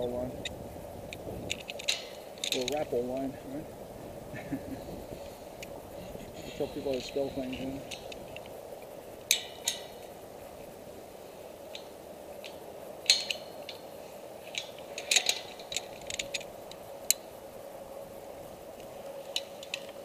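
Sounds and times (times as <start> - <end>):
steady low hum: 0.0 - 20.0
metal carabiners clinking: 1.4 - 3.4, 6.4 - 8.5, 9.3 - 10.1, 11.7 - 17.2.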